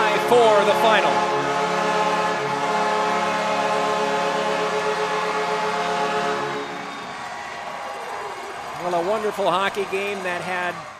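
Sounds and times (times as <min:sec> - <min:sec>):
goal horn chord: 0:00.0 - 0:07.1
crowd noise: 0:00.0 - 0:10.9.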